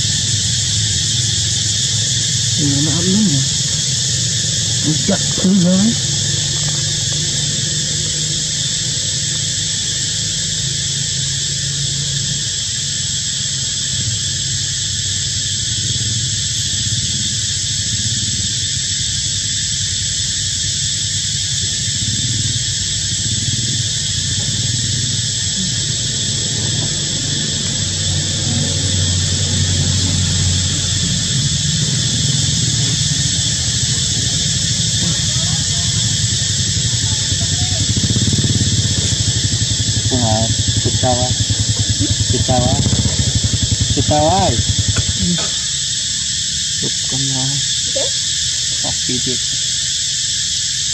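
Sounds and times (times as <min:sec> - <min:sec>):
high-pitched insect drone: 0:00.0 - 0:50.9
low rumble: 0:25.6 - 0:46.2.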